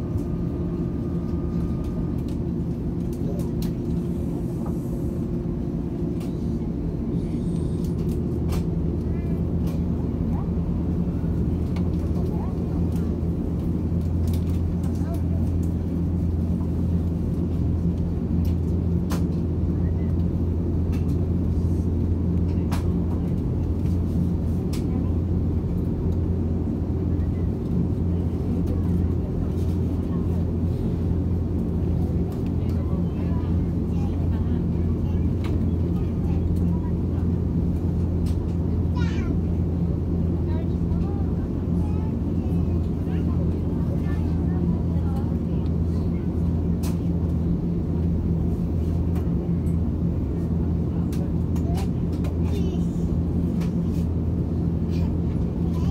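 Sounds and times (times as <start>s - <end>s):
aircraft cabin drone: 0.0s - 55.9s
faint cabin voices: 0.0s - 55.9s.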